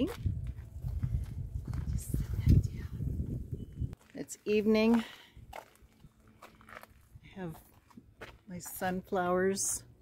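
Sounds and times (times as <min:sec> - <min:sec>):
footsteps: 0:00.0 - 0:02.6, 0:03.9 - 0:09.8.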